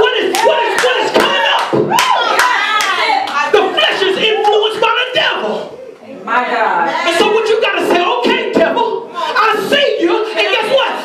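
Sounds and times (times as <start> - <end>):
man preaching loudly: 0.0 - 1.8, 7.1 - 11.0
rhythmic hand clapping: 0.0 - 3.4.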